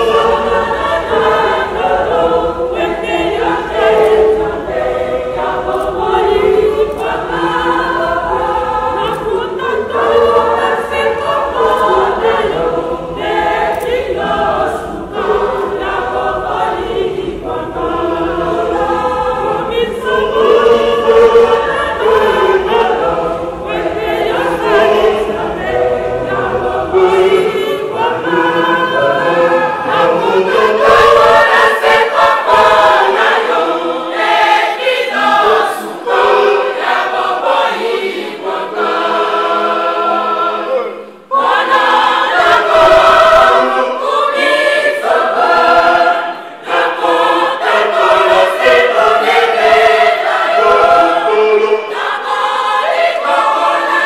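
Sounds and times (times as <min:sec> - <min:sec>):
choir singing: 0:00.0 - 0:54.0.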